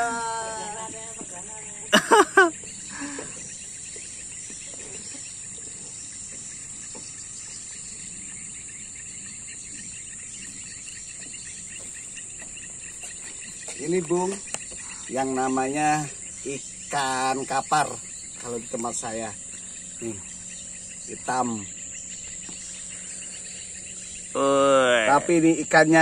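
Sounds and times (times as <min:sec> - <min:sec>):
insects chirping: 0:00.0 - 0:26.0.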